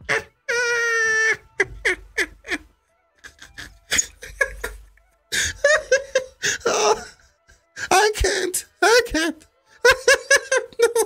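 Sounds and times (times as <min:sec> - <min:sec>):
man laughing hard: 0:00.0 - 0:07.3, 0:09.8 - 0:11.0.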